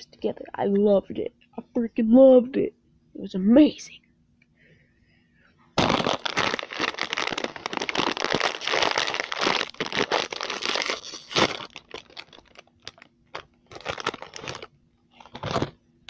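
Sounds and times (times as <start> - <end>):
plastic chip bag crinkling: 5.8 - 15.8.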